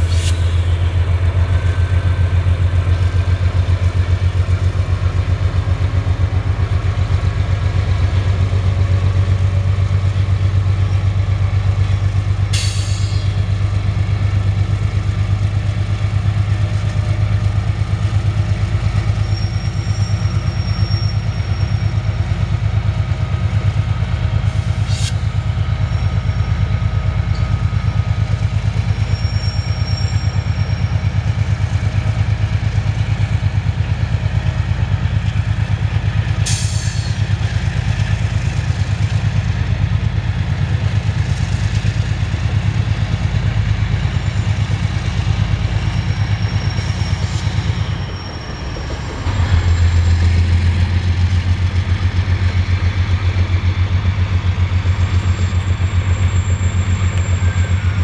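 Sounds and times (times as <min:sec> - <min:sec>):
diesel locomotive engine drone: 0:00.0 - 0:58.0.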